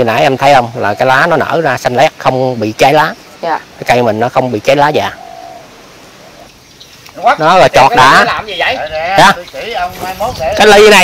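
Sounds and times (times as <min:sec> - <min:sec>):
faint background noise: 0:00.0 - 0:11.0
faint bird call: 0:05.0 - 0:07.3.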